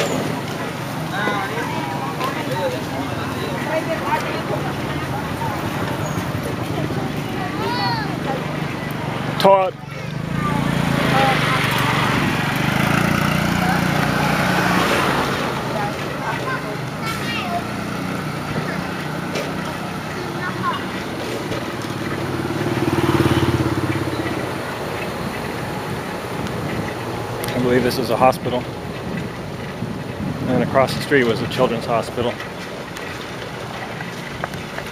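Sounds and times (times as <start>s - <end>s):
motorbike engines passing: 0.0s - 34.9s
street hum: 0.0s - 34.9s
voices: 0.0s - 34.9s.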